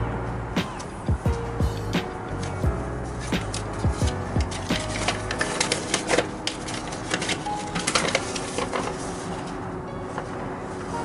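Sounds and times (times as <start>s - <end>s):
low beat of background music: 0.0s - 5.4s
paper leaflet crackling and rustling: 2.4s - 11.0s.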